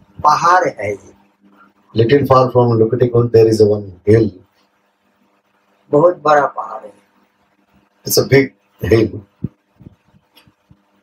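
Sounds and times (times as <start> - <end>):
man's voice: 2.0 - 4.4
soft low thumps: 9.3 - 10.9.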